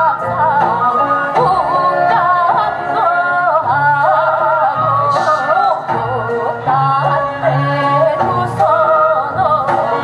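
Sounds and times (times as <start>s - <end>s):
amplified instrumental accompaniment: 0.0s - 10.0s
women singing through pa: 0.0s - 10.0s.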